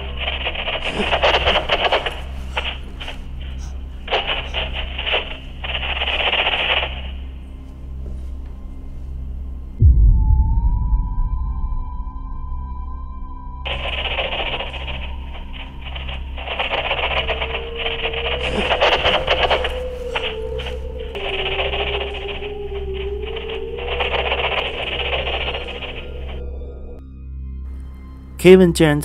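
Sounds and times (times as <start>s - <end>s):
dark ambient music with low drone: 0.0s - 29.0s
wavering tone: 15.0s - 27.0s.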